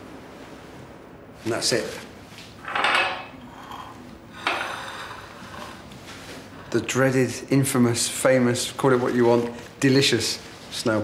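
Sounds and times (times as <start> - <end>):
crockery and utensils clattering: 2.6 - 5.2.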